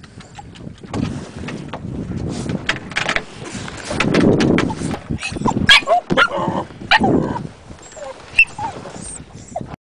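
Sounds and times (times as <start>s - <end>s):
dog barking and yelping: 5.2s - 9.7s
dog whining: 5.2s - 9.8s.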